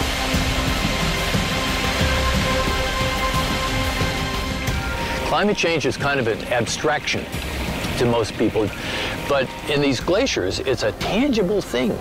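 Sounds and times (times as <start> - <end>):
low rumble: 0.0 - 6.6
music of sustained held notes: 0.0 - 12.0
steady rushing noise: 0.0 - 12.0.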